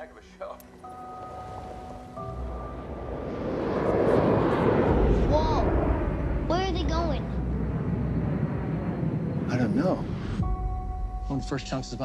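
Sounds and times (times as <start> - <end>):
jet aircraft passing overhead: 0.0 - 10.9.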